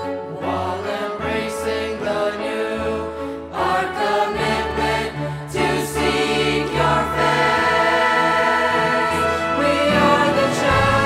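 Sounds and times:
group singing worship song: 0.0 - 11.0
instrumental accompaniment: 3.6 - 11.0.

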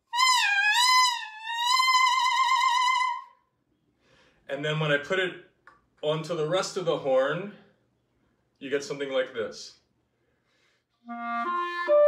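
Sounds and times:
clarinet mouthpiece squawk: 0.0 - 3.4.

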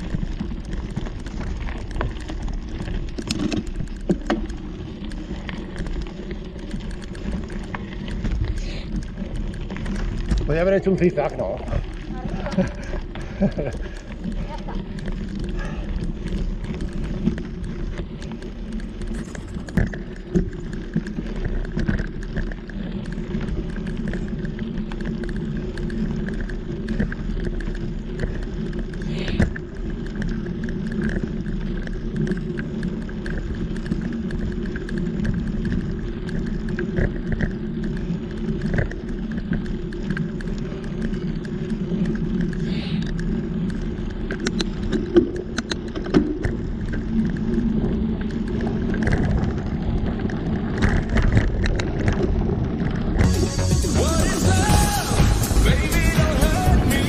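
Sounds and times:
bike clicks and rattles: 0.0 - 57.0
bike tyres rolling on dirt: 0.0 - 57.0.

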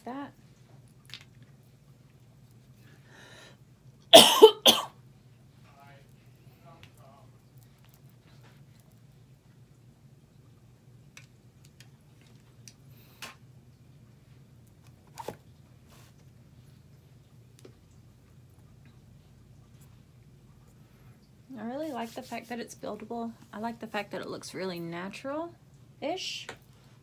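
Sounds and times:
low steady hum: 0.0 - 27.0
person coughing: 4.2 - 4.9.

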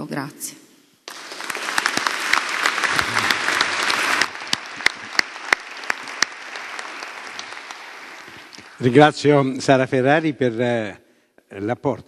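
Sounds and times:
audience applause: 1.1 - 9.4.

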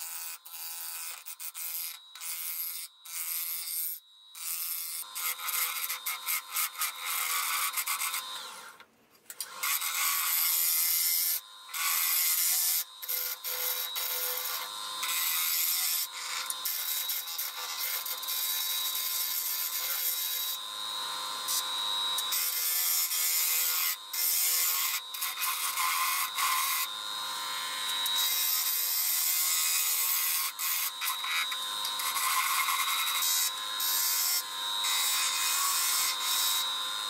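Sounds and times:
gouge cutting wood on lathe: 0.2 - 8.7, 9.5 - 37.0
lathe motor hum: 30.1 - 37.0.

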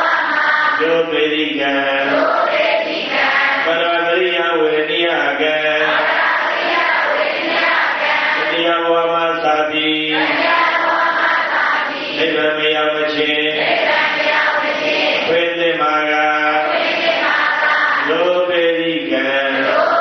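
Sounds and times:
monk chanting into microphone: 0.0 - 2.6, 3.6 - 6.2, 8.4 - 10.7, 12.1 - 13.9, 15.2 - 20.0.

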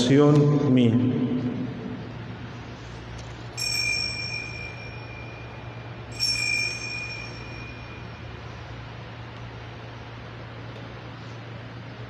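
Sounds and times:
steady low hum: 0.0 - 12.0
small bell ringing: 3.5 - 8.8.

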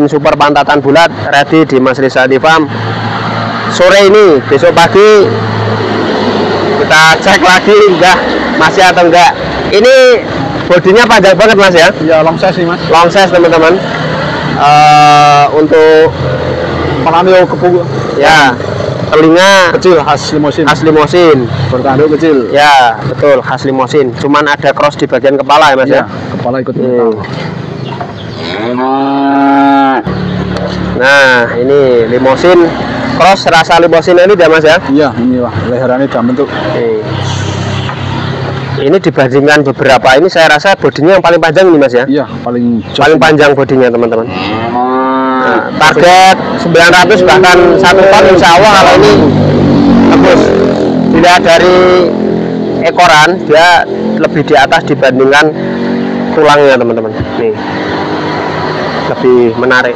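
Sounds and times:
calf mooing: 28.4 - 30.1, 44.3 - 45.8.

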